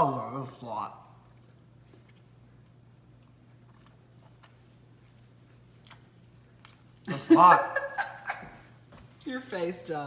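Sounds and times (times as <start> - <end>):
low steady hum: 0.0 - 10.0
faint chewing: 1.2 - 7.2.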